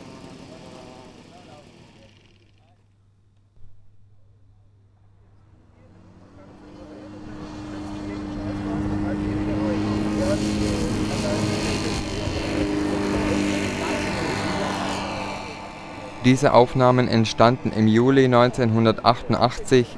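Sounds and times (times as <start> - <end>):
model aircraft engine and propeller: 0.0 - 3.2, 5.0 - 19.9.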